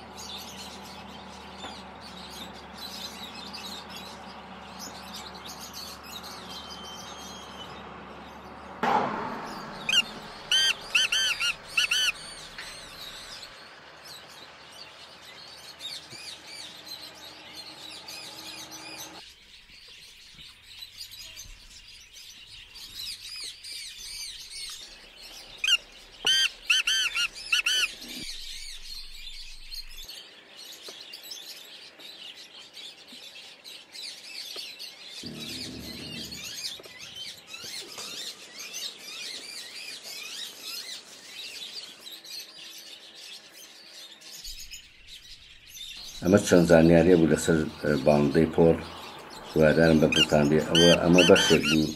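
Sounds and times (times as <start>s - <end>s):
francolin harsh calls: 0.0s - 19.2s, 24.8s - 28.6s, 46.0s - 51.9s
small birds chirping: 0.0s - 51.9s.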